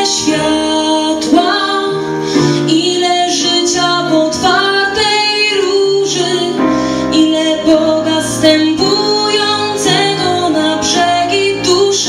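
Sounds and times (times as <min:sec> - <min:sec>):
piano accompaniment: 0:00.0 - 0:12.0
woman singing slow melody: 0:00.0 - 0:12.0.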